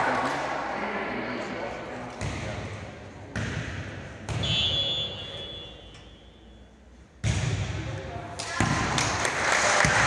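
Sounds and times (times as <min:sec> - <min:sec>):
referee's whistle blast: 0:04.4 - 0:06.5.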